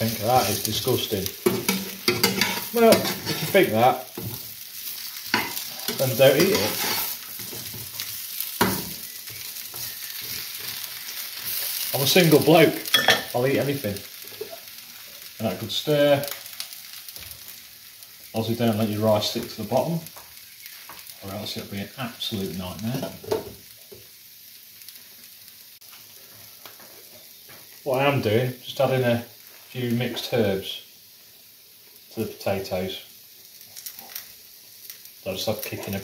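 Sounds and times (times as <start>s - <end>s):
potatoes sizzling in a pan: 0.0s - 36.0s
metal turner scraping a pan: 0.1s - 4.5s, 5.3s - 11.8s.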